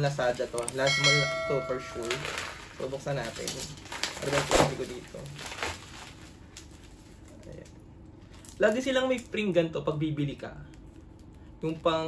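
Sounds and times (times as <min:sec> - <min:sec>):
plastic pouch crinkling and tearing: 0:02.0 - 0:09.4.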